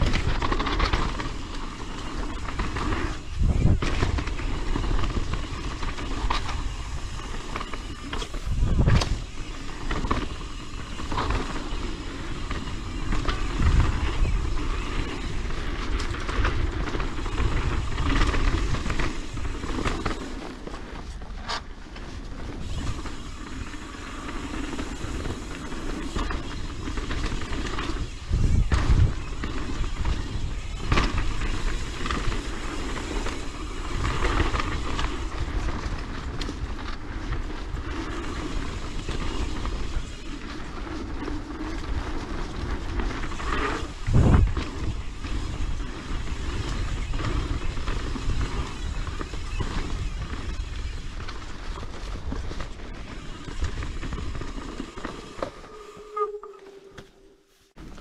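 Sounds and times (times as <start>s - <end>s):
heavy thumps of bike on bumps: 0.0s - 56.0s
bike rattles: 0.0s - 58.0s
mountain bike tyre rush: 0.0s - 58.0s.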